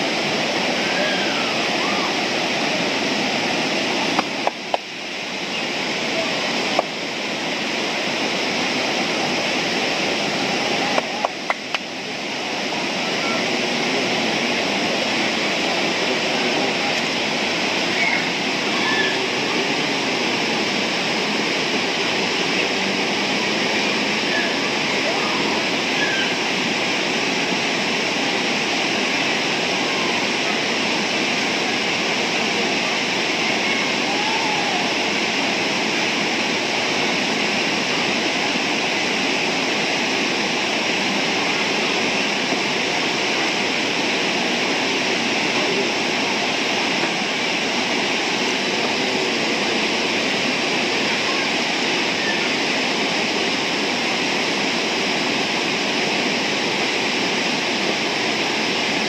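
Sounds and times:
river rapids roaring over rocks: 0:00.0 - 0:59.0.

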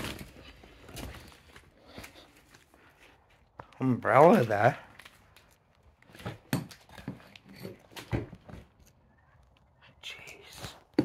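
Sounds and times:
footsteps on rubble and floorboards: 0:00.0 - 0:08.9.

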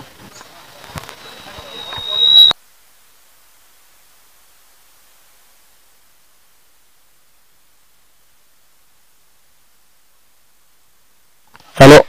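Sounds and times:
faint steady hiss: 0:00.0 - 0:12.0
microphone feedback whistle: 0:00.8 - 0:02.6.

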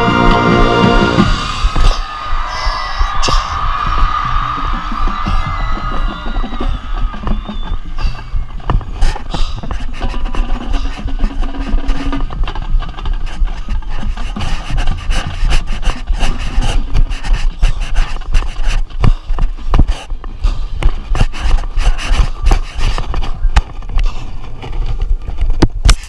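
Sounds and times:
heavy low rumble: 0:00.0 - 0:06.2
microphone handling scraping: 0:00.9 - 0:26.0.

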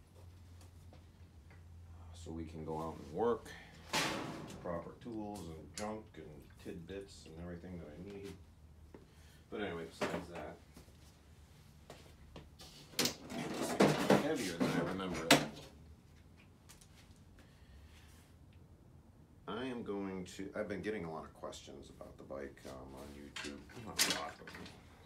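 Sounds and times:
objects clattering: 0:13.2 - 0:15.6.

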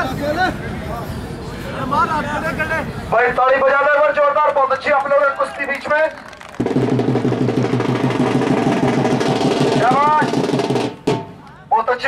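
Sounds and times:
man speaking over loudspeaker: 0:01.9 - 0:06.2, 0:09.7 - 0:10.4, 0:11.6 - 0:12.0
fast drum roll: 0:06.4 - 0:11.4.

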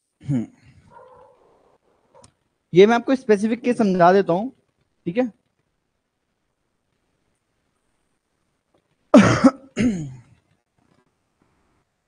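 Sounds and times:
man coughing: 0:09.1 - 0:10.3.

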